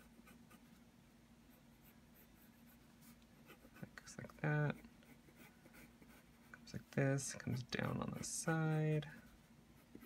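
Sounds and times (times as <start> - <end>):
pencil scratching on paper: 0.0 - 0.8, 1.5 - 10.0
low steady hum: 0.0 - 10.0.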